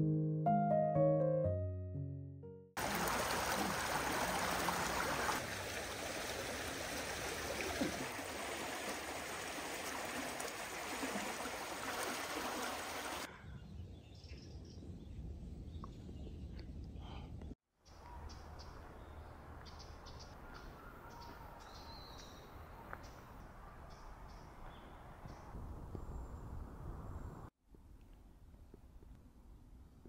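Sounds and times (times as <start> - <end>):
water rushing along stone channel: 2.8 - 13.3
woodland ambience: 2.8 - 30.0.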